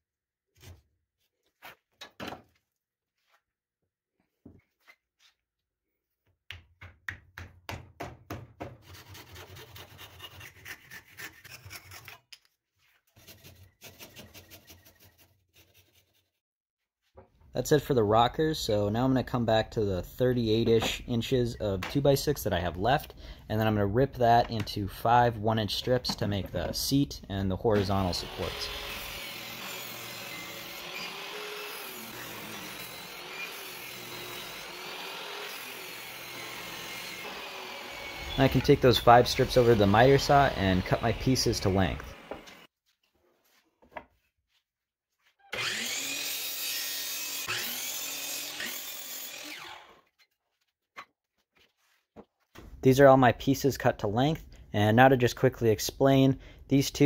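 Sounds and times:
rasping strokes on wood: 0:08.8 - 0:12.2, 0:13.1 - 0:16.3
table saw ripping a board: 0:27.7 - 0:42.7, 0:45.5 - 0:50.2.

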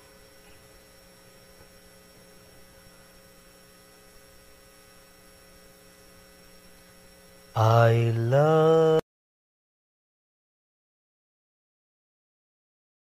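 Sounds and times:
faint electrical hum: 0:00.0 - 0:09.0.

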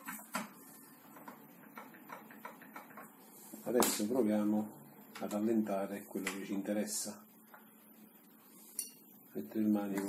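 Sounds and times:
clicks and taps on a workbench: 0:00.0 - 0:03.2.

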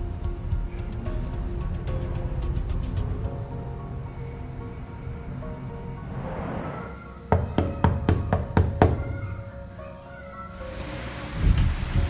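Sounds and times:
background music: 0:00.0 - 0:12.0
fist knocking on wooden door: 0:07.3 - 0:09.4.

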